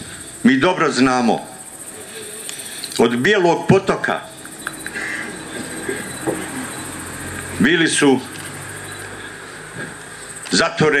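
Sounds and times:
high rapidly pulsing buzz: 0:00.0 - 0:10.5
background hiss: 0:00.0 - 0:11.0.

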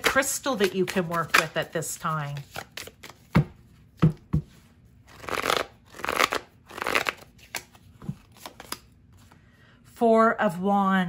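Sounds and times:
cards sliding when shuffled: 0:04.5 - 0:09.4.

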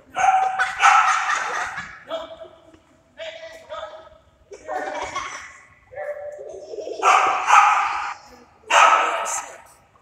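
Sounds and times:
dog barking: 0:00.1 - 0:01.4, 0:06.0 - 0:06.3, 0:07.0 - 0:09.5.

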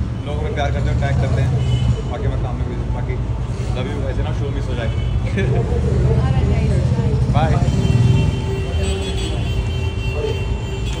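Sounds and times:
city background rumble: 0:00.0 - 0:11.0.

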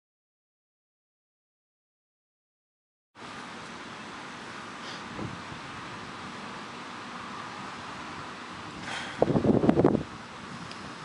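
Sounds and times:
wind on microphone: 0:05.1 - 0:05.7, 0:08.6 - 0:11.0.

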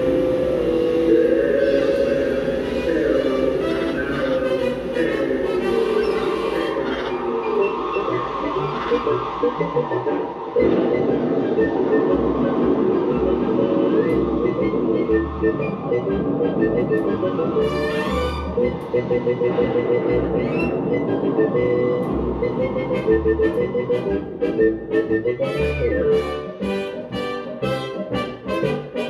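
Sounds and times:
ride soundtrack music from record: 0:00.0 - 0:29.0.

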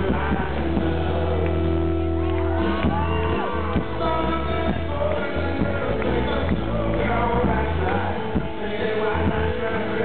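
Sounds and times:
live band with guitars: 0:00.0 - 0:10.0
audience whooping and shouting: 0:01.8 - 0:04.8.

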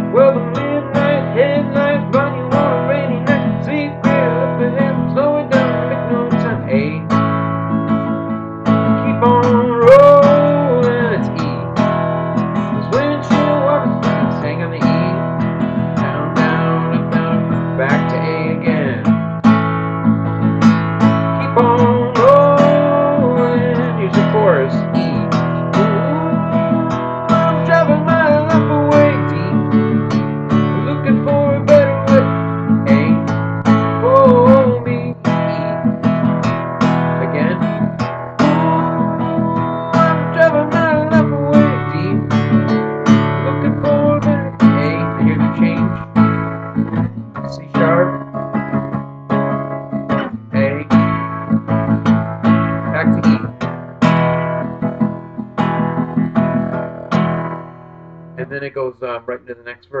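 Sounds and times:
acoustic guitar strumming: 0:00.0 - 1:00.0.

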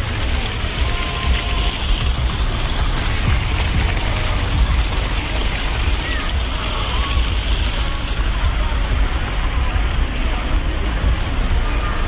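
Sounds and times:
low rumble: 0:00.0 - 0:11.7
fountain water splashing: 0:00.0 - 0:12.0.

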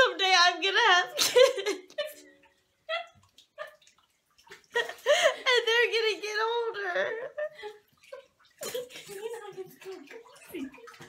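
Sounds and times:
woman sobbing: 0:01.1 - 0:02.3, 0:04.8 - 0:07.9.

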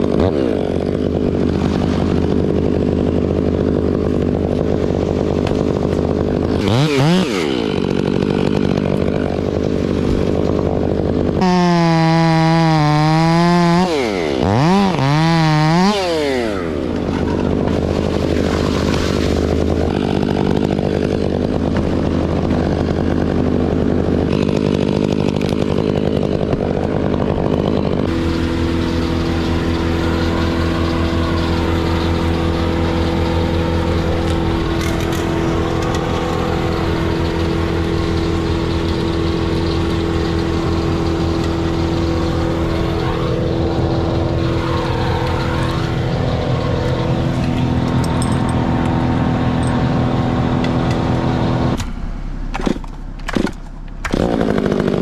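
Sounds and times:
gas chainsaw running: 0:00.0 - 0:55.0.

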